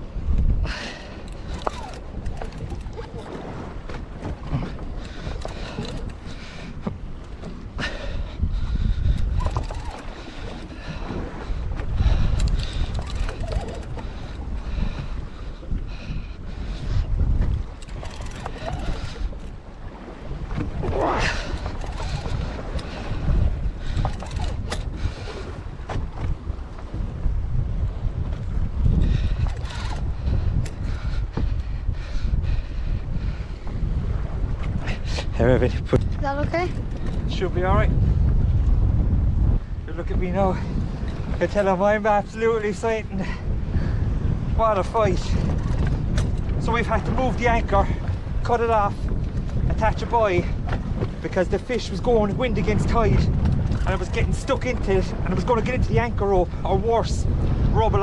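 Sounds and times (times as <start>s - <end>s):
sea washing against boat hull: 0.0s - 58.0s
wind buffeting microphone: 0.0s - 58.0s.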